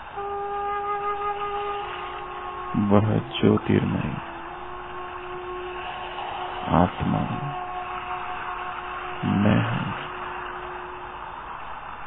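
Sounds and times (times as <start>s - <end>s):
steady hiss: 0.0s - 12.0s
soft background music: 0.1s - 11.0s
short low voice sound: 2.8s - 4.3s, 6.7s - 7.6s, 9.2s - 10.2s.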